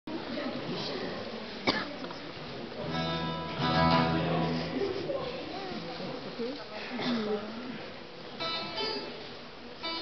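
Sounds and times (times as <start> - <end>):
low room murmur: 0.1 - 10.0
acoustic guitar strummed: 2.8 - 5.0, 8.4 - 9.2, 9.8 - 10.0.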